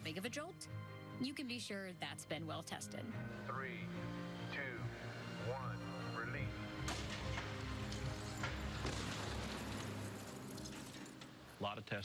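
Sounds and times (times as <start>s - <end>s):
background music low tones: 0.0s - 12.0s.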